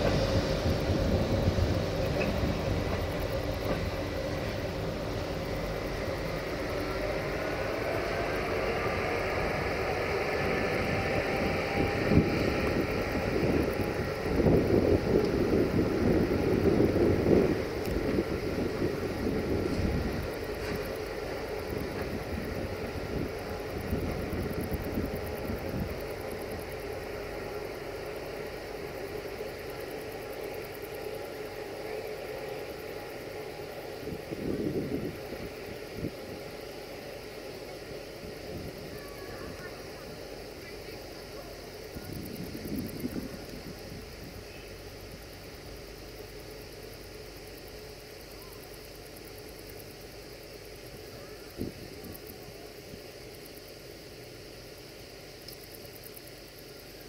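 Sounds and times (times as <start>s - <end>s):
electric locomotive whine: 0.0s - 57.0s
locomotive rumbling: 0.0s - 57.0s.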